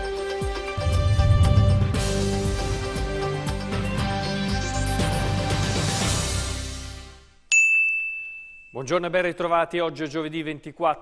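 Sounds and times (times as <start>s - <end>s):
theme tune: 0.5s - 7.2s.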